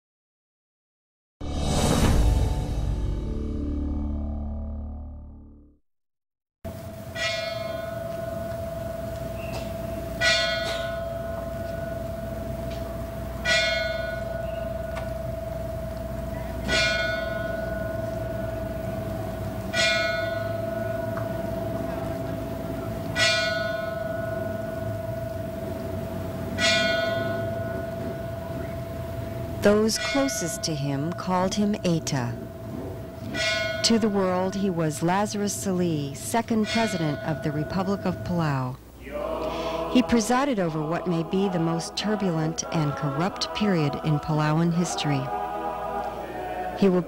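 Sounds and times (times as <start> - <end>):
church bell tolling: 7.0 - 38.8.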